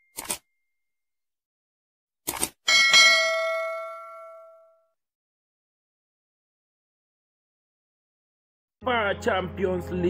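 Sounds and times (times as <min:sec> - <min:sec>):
bell ding: 0:02.7 - 0:04.9.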